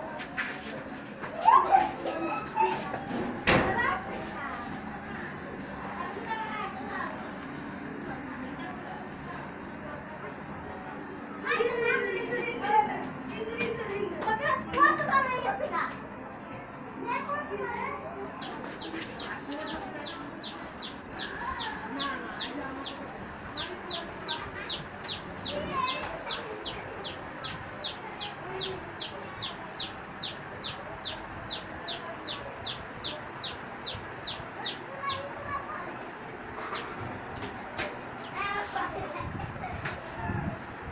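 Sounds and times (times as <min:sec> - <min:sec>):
animal high chirps: 0:18.8 - 0:35.2.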